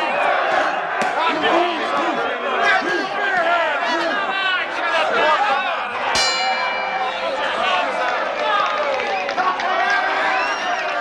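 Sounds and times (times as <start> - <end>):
men shouting: 0.0 - 8.4.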